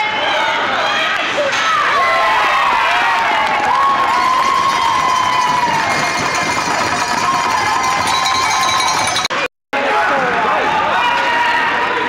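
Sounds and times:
spectators cheering and shouting: 0.0s - 12.0s.

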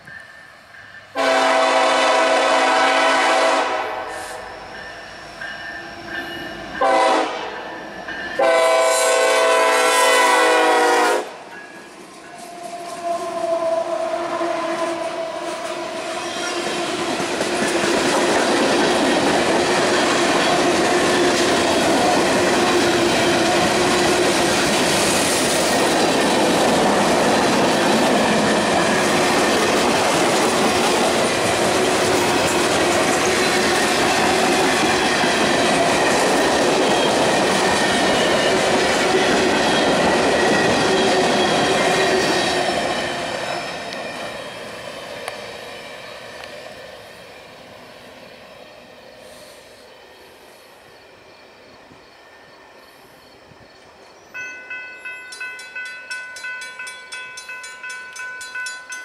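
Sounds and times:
train horn blasts: 1.1s - 4.7s, 6.8s - 7.8s, 8.4s - 11.5s, 12.4s - 17.1s.

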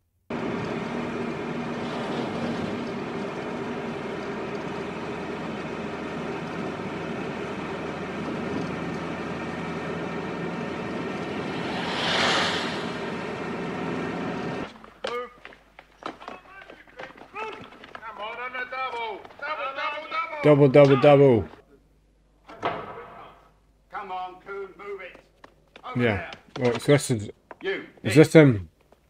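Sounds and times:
van engine and road noise: 0.3s - 14.8s.

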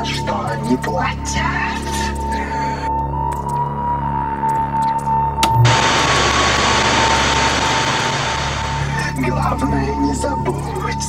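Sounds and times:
steady electronic tone: 5.6s - 8.9s
low hum: 5.6s - 9.0s
tv static hiss: 5.6s - 9.0s.

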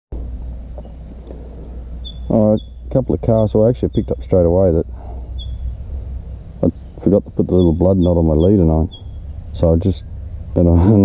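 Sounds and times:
low outdoor rumble: 0.1s - 11.0s.

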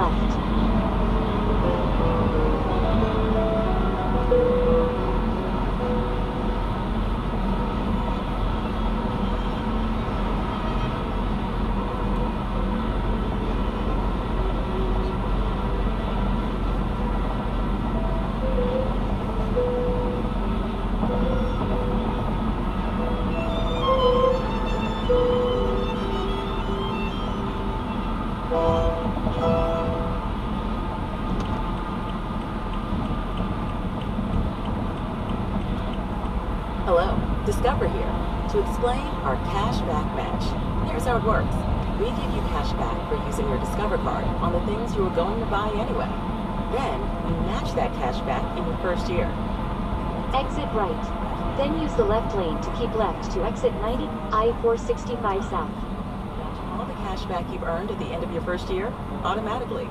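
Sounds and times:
music playing: 0.0s - 7.6s, 17.3s - 31.4s
car road and engine noise: 0.0s - 59.9s.

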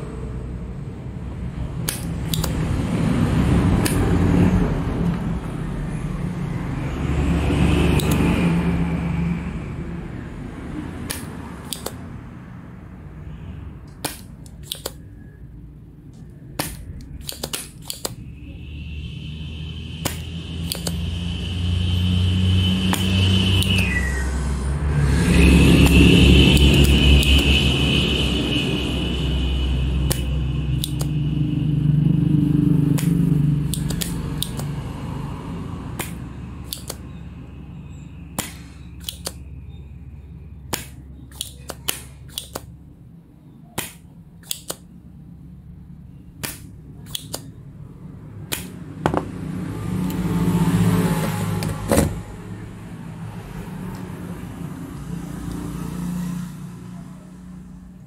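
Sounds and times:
desoldering pump snapping: 1.8s - 2.8s, 3.6s - 4.3s, 7.9s - 8.4s, 11.0s - 12.1s, 13.8s - 15.2s, 16.1s - 18.2s, 20.0s - 21.1s, 22.9s - 23.9s, 25.8s - 27.6s, 30.1s - 31.2s, 32.9s - 34.8s, 35.9s - 37.1s, 38.3s - 39.5s, 40.7s - 42.8s, 43.8s - 44.9s, 46.4s - 47.6s, 48.4s - 49.3s
loud drone: 18.2s - 38.9s.

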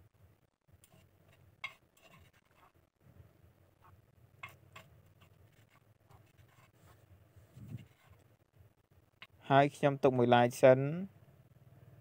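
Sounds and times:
metal spoon scraping glass bowl: 0.8s - 2.8s.

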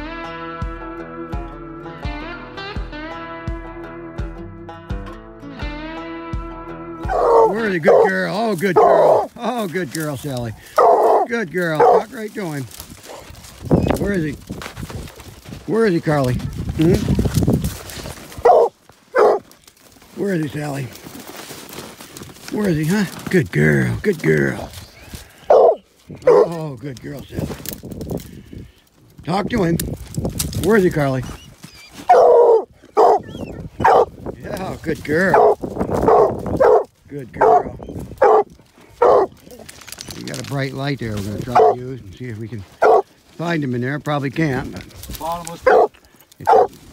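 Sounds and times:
hound barking: 7.0s - 9.5s, 10.6s - 13.5s, 18.3s - 19.6s, 25.3s - 26.6s, 31.8s - 34.2s, 35.2s - 39.6s, 41.4s - 41.9s, 42.8s - 43.1s, 45.6s - 46.8s.

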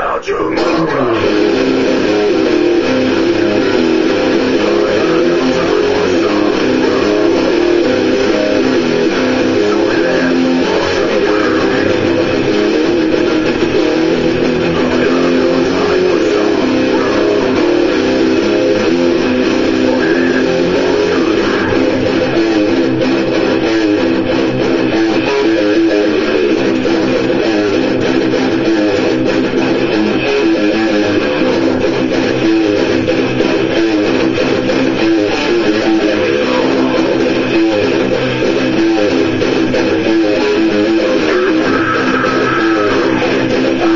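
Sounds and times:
electric guitar strumming chords: 0.0s - 43.9s.

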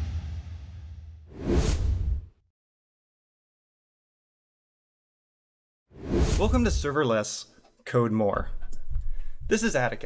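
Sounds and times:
transition whoosh: 0.0s - 2.3s.

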